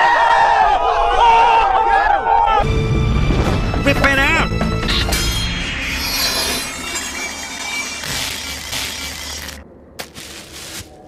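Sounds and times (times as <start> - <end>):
music: 2.6 - 8.0.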